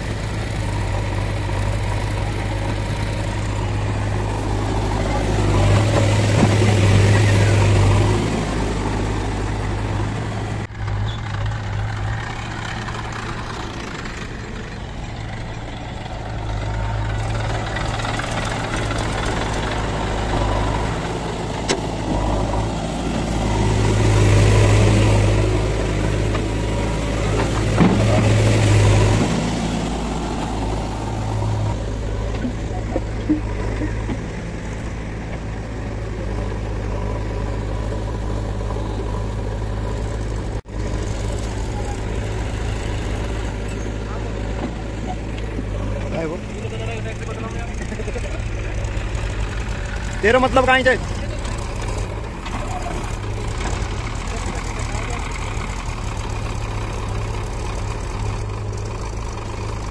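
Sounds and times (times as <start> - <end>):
diesel engines running: 0.0 - 59.9.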